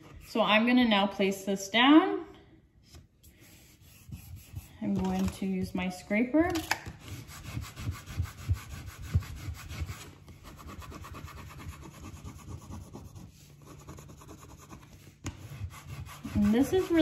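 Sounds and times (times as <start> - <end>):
plastic scraper rubbing paper: 7.0 - 17.0.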